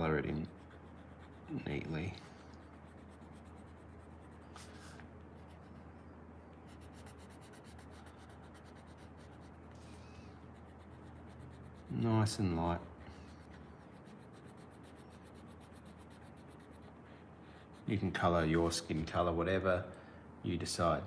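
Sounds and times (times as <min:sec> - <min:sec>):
pencil rubbing on paper: 0:00.0 - 0:05.8, 0:06.7 - 0:18.8
pencil scratch: 0:00.0 - 0:05.8, 0:06.7 - 0:12.5, 0:13.1 - 0:18.8
low steady hum: 0:00.0 - 0:21.0.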